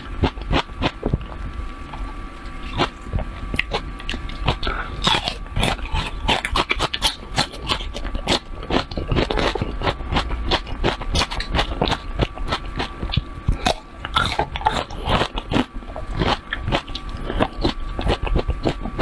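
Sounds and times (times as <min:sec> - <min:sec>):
crunchy chewing: 0:00.0 - 0:19.0.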